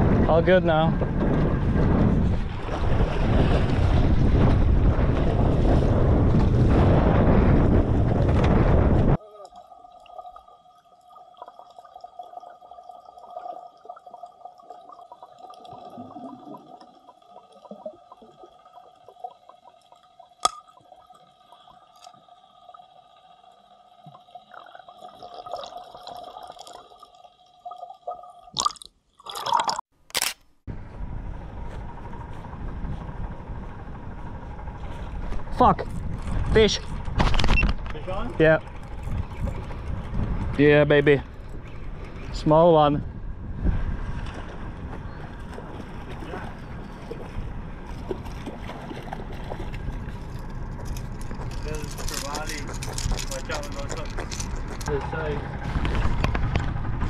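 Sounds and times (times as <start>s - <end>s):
wind buffeting microphone: 0.0s - 9.2s, 30.7s - 57.0s
muffled underwater sound: 0.0s - 19.8s, 31.1s - 57.0s
faint steady hums: 30.7s - 57.0s.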